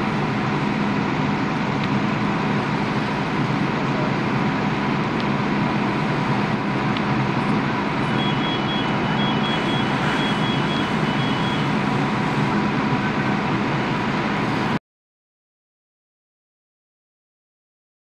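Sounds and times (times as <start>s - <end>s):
fire engine engine and pump: 0.0s - 14.8s
faint high beeping: 8.1s - 11.8s.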